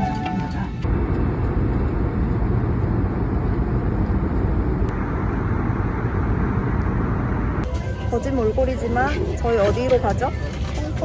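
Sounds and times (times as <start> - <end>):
jet engine rumble in cabin: 0.2 - 11.0
rushing air: 0.8 - 7.7.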